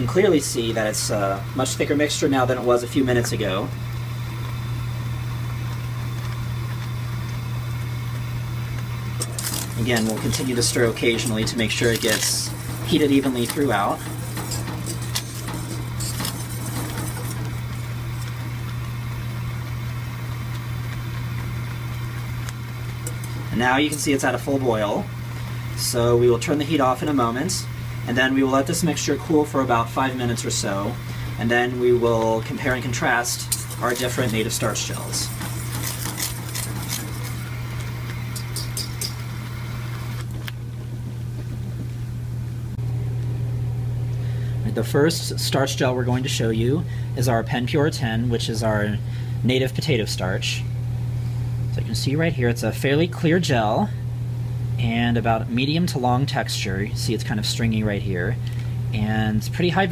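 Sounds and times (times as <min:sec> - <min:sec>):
steady low hum: 0:00.0 - 0:59.9
paste bubbling in saucepan: 0:03.8 - 0:25.8, 0:32.0 - 0:41.3
whisk stirring: 0:09.2 - 0:19.0, 0:22.8 - 0:24.6, 0:32.1 - 0:39.5
whisk clicking against pan: 0:33.3 - 0:37.5, 0:38.3 - 0:39.2.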